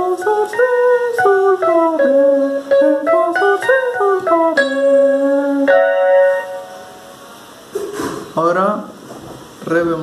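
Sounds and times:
man singing gliding notes: 0.0s - 6.5s
electronic keyboard: 0.0s - 7.1s.

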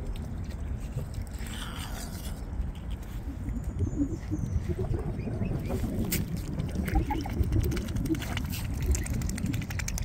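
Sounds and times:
wind rumble on microphone: 0.0s - 10.0s
swan pecking and rustling in grass: 5.7s - 10.0s.

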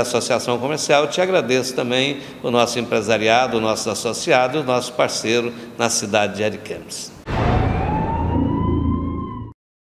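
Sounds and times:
low rumble: 7.3s - 9.5s
siren wail rising in pitch: 7.3s - 9.6s.

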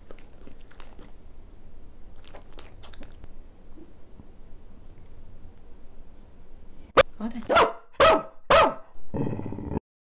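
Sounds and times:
dog barking: 7.5s - 8.9s.

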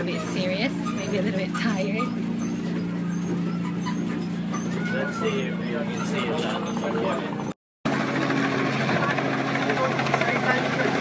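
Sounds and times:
ride train motor hum: 0.0s - 11.0s.

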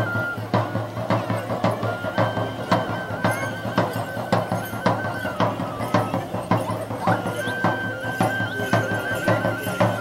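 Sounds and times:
drum beating steadily: 0.0s - 10.0s
high held melody: 0.0s - 10.0s.

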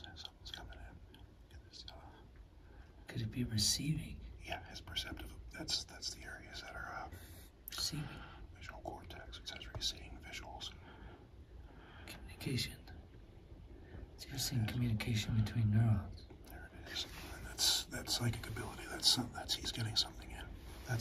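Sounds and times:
people whispering: 0.0s - 1.0s, 1.6s - 2.3s, 3.1s - 10.8s, 14.2s - 21.0s
steady low hum: 0.0s - 21.0s.

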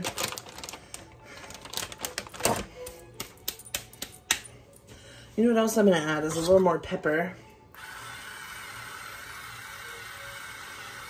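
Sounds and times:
plastic bag crinkling: 0.0s - 2.8s.

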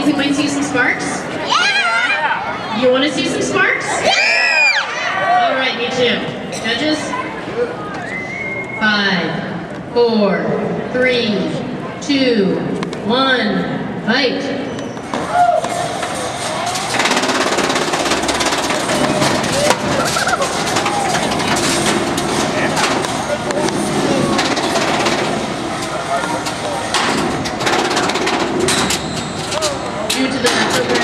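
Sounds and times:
spectators shouting and cheering: 1.3s - 2.9s, 3.9s - 5.8s, 14.9s - 26.9s.

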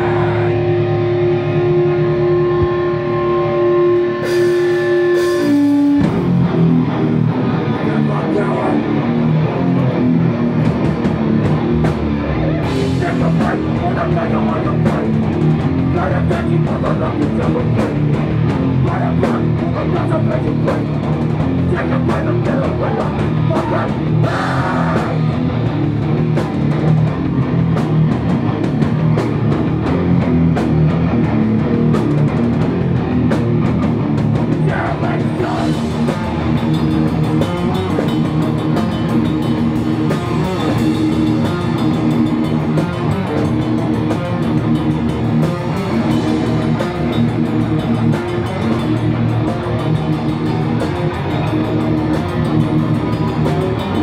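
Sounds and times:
drum kit: 0.0s - 54.0s
electric guitars: 0.0s - 54.0s
hardcore band playing live: 0.0s - 54.0s.

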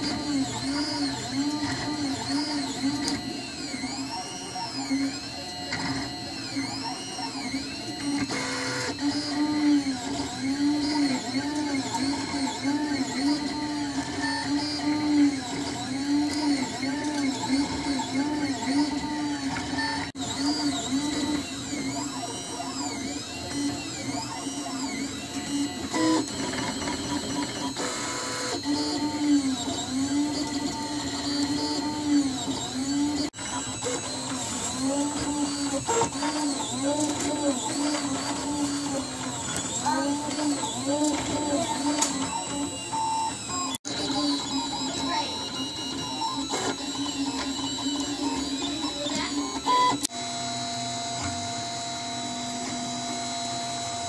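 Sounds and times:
stepper motors whining: 0.0s - 54.0s.

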